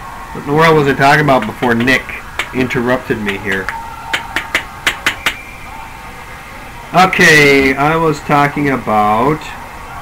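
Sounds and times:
hockey sticks clacking on puck: 0:01.4 - 0:05.4.

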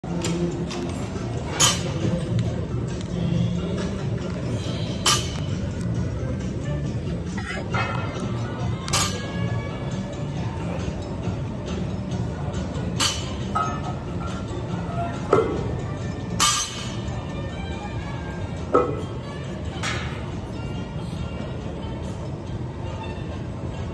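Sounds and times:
background music: 0:00.0 - 0:23.9.

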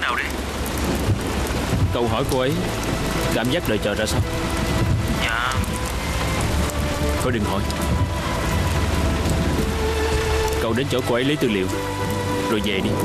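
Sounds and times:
rain falling on a car: 0:00.0 - 0:13.0
soft background music: 0:00.8 - 0:13.0.

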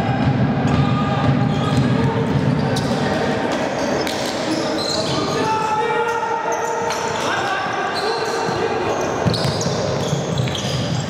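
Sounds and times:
reverberant hall din: 0:00.0 - 0:11.0
shoe squeaks: 0:02.6 - 0:11.0.

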